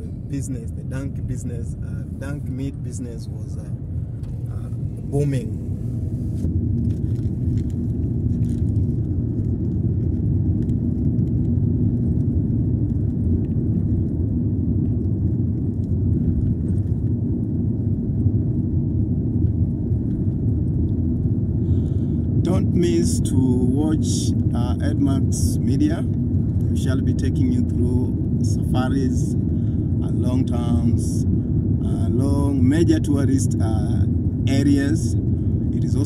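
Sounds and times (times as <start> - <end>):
man speaking: 0.0 - 3.8, 4.5 - 5.7, 22.5 - 26.1, 26.8 - 29.4, 30.0 - 31.2, 31.8 - 35.2, 35.8 - 36.0
faint steady hum: 0.0 - 36.0
road and engine rumble in car: 0.0 - 36.0.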